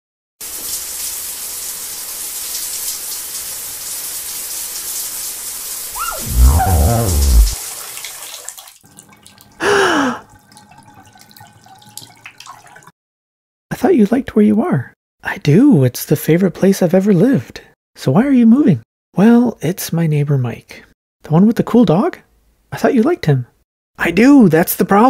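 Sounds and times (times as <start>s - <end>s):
person vocalizing without words: 6.0s - 7.6s
water dripping: 10.3s - 12.8s.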